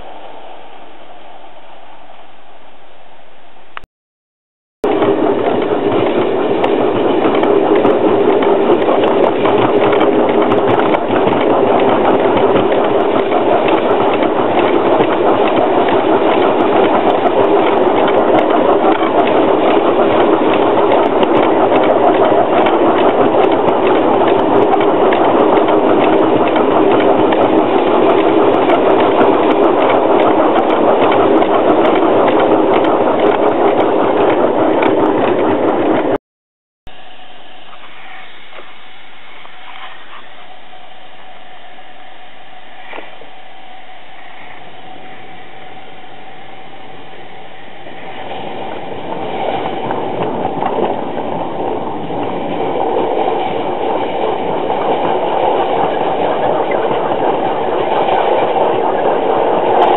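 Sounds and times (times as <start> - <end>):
miniature steam locomotive running: 4.8 - 36.2, 36.9 - 59.9
wheels on rails: 4.8 - 36.2, 37.0 - 59.9.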